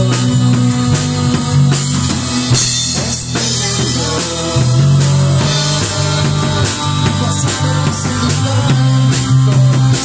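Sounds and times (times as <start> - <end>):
bass guitar: 0.0 - 10.0
drum kit: 0.0 - 10.0
electric guitars: 0.0 - 10.0.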